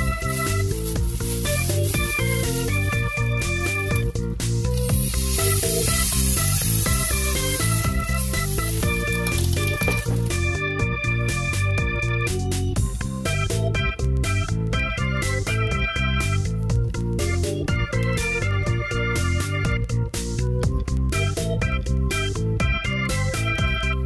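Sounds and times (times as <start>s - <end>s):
gas spraying hiss: 0.0s - 10.4s
background music: 0.0s - 24.0s.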